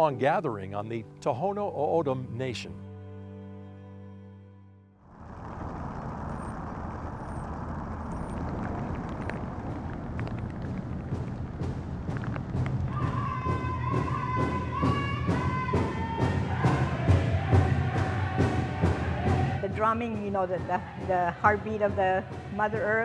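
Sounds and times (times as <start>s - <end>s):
high voices singing: 12.9s - 23.0s.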